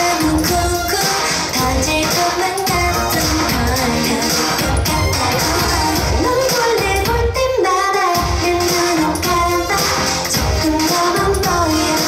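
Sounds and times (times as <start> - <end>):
dance pop beat: 0.0 - 12.0
female group singing: 0.0 - 12.0.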